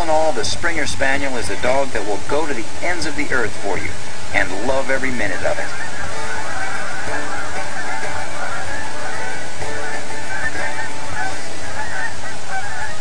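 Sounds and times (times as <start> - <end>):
flock of birds calling: 0.0 - 13.0.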